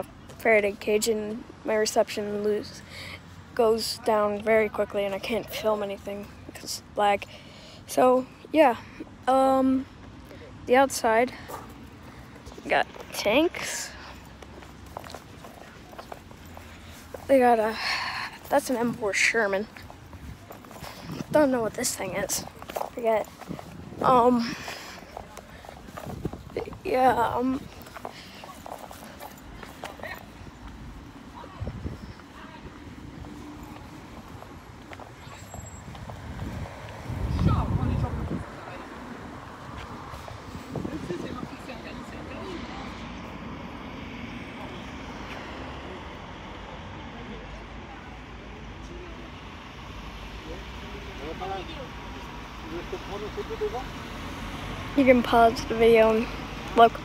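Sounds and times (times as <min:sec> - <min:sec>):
footsteps on paved path: 0:00.0 - 0:46.2.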